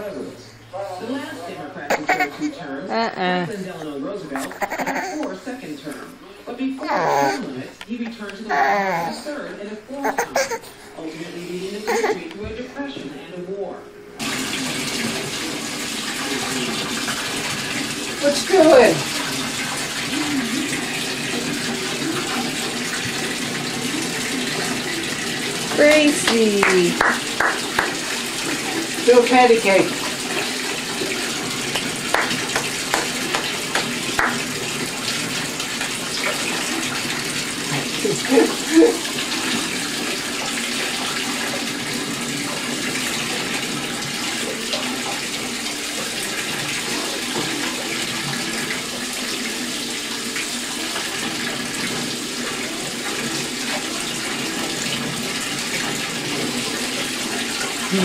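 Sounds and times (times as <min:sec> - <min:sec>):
bathtub faucet running: 0:00.0 - 0:58.0
baby vocalizing: 0:01.9 - 0:03.2, 0:04.4 - 0:05.4, 0:06.8 - 0:07.6, 0:08.4 - 0:09.3, 0:10.0 - 0:10.8, 0:11.7 - 0:12.3.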